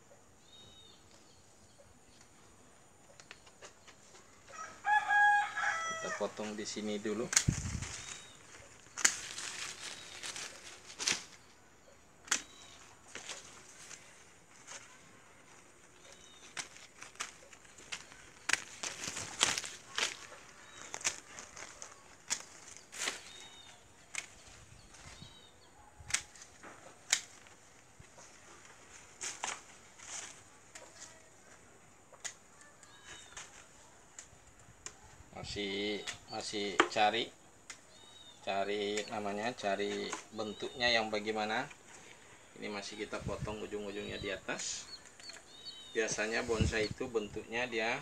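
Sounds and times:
rustle of leaves and branches: 0:00.4 - 0:48.0
pruning shears snipping: 0:06.4 - 0:11.4, 0:12.2 - 0:14.9, 0:15.5 - 0:25.1, 0:26.0 - 0:31.1.

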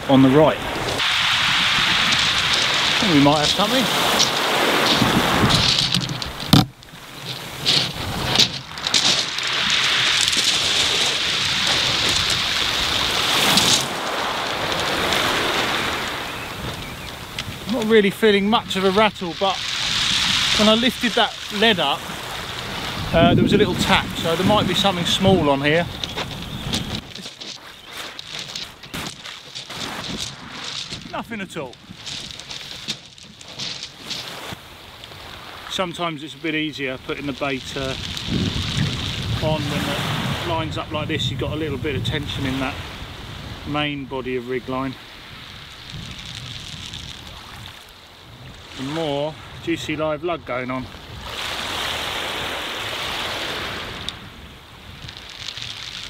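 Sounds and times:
waves washing over shingle: 0:00.0 - 0:56.0
short crackles: 0:01.7 - 0:17.9, 0:18.8 - 0:35.7, 0:36.4 - 0:39.7, 0:45.4 - 0:47.9, 0:53.4 - 0:56.0.

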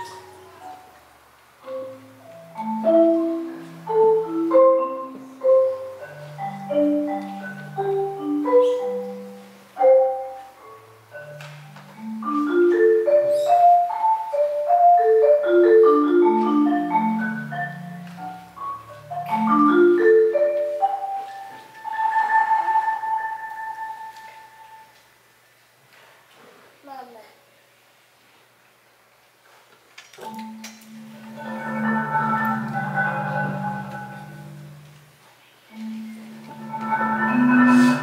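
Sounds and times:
solo marimba: 0:00.0 - 0:25.0, 0:30.2 - 0:38.0.

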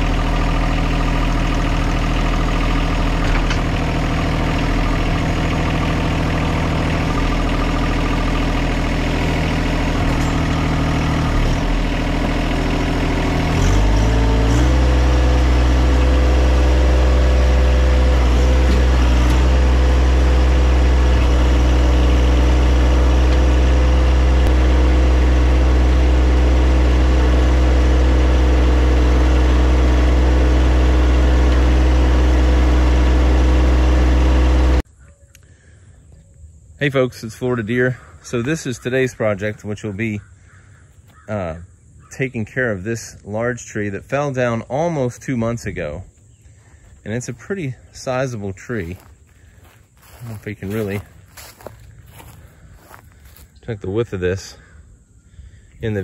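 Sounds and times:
diesel tractor engine running: 0:00.0 - 0:35.9, 0:36.6 - 0:56.0.

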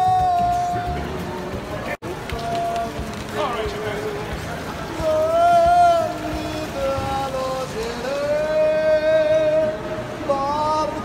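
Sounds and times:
background hiss: 0:00.0 - 0:11.0.

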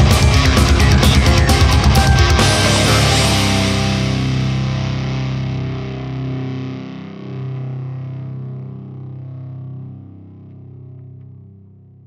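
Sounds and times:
distorted electric guitar chord: 0:00.0 - 0:10.8.

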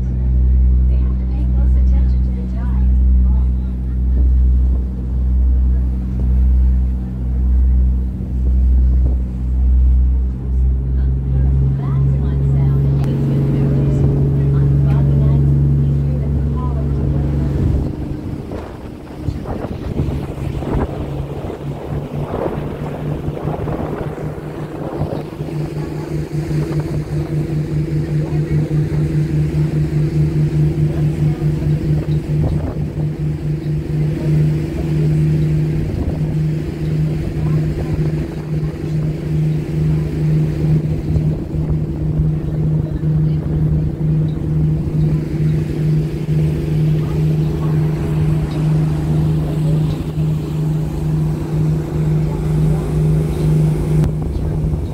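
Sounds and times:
boat engine running: 0:00.0 - 0:54.9
rushing water: 0:00.0 - 0:54.9
wind: 0:00.0 - 0:54.9.

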